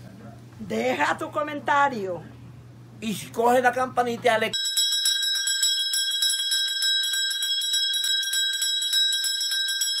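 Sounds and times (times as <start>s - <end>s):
small bell ringing rapidly: 4.5s - 10.0s.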